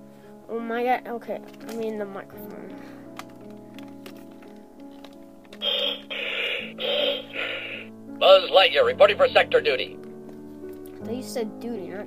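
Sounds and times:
toy speaker crackly static bursts: 5.6s - 9.8s.

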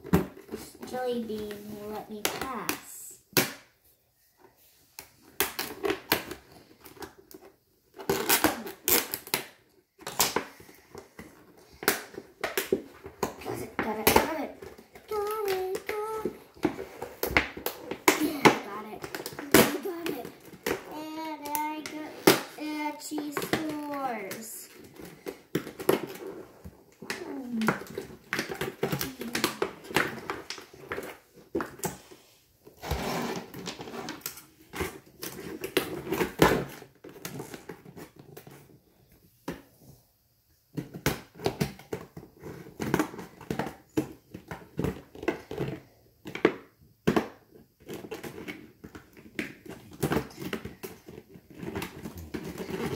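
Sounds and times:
child's voice: 0.6s - 3.3s, 13.4s - 16.4s, 18.1s - 24.8s, 27.0s - 27.8s, 28.9s - 29.8s
plastic packaging being opened: 5.4s - 10.8s.

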